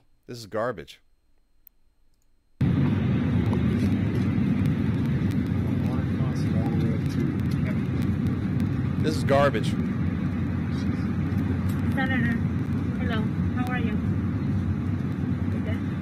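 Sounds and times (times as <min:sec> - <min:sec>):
airplane cabin rumble: 0:02.6 - 0:16.0.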